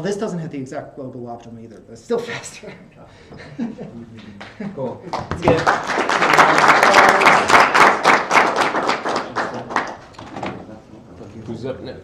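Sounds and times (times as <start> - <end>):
audience applauding: 5.1 - 10.1.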